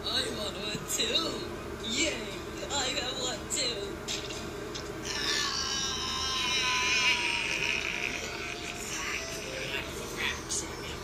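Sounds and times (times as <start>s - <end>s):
person wailing: 5.1s - 8.8s.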